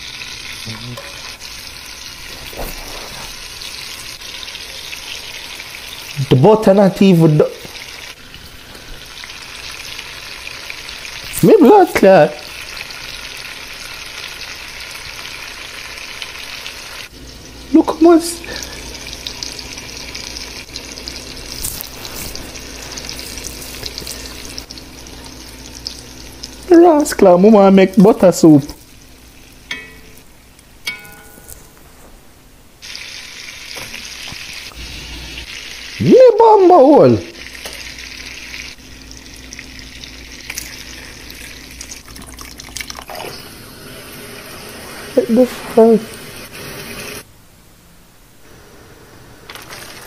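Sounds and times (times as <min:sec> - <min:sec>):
meat sizzling in butter: 0:00.0 - 0:27.2, 0:32.8 - 0:36.3, 0:37.2 - 0:47.2
ringing clinks: 0:30.9 - 0:31.7.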